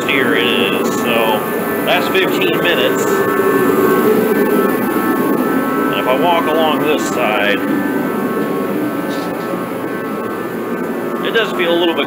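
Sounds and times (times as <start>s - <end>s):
heater fan and burner rush: 0.0s - 12.0s
high whine: 0.0s - 12.0s.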